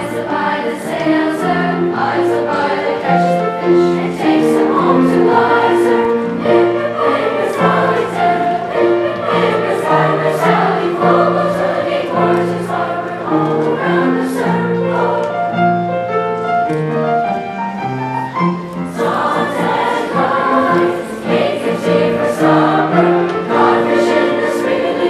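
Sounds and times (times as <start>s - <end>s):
children's choir singing: 0.0s - 17.4s, 18.2s - 25.0s
piano accompaniment: 0.0s - 25.0s.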